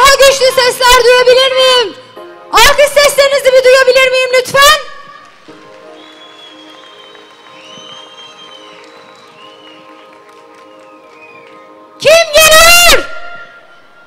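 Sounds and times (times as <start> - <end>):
keyboard sustained chords: 5.1 - 12.4.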